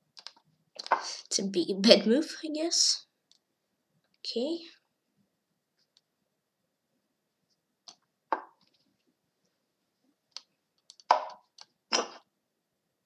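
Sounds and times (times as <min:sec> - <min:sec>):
chess move clicks and knocks: 0:07.9 - 0:08.8, 0:10.4 - 0:12.2.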